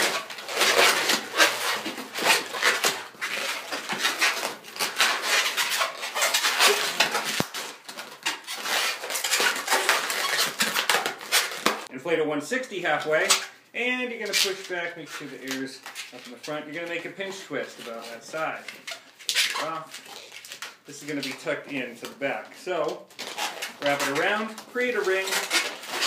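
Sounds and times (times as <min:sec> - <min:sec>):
balloons rubbing and squeaking: 0:00.0 - 0:11.9, 0:12.6 - 0:26.0.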